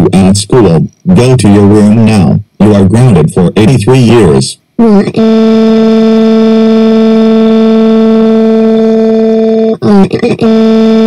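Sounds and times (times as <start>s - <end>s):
synthesized voice holding vowel: 4.8s - 11.0s.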